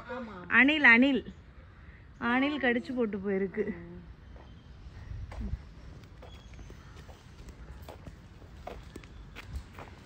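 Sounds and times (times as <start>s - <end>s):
footsteps on asphalt: 4.3s - 10.0s.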